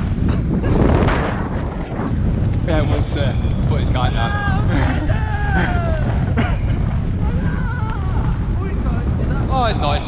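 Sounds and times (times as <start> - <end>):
wind rumble on microphone: 0.0 - 10.0
person calling out and laughing: 4.4 - 6.4.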